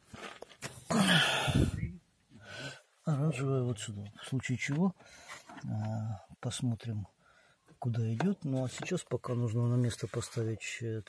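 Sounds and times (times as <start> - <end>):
man's breathy vocal sound: 0.9 - 2.9.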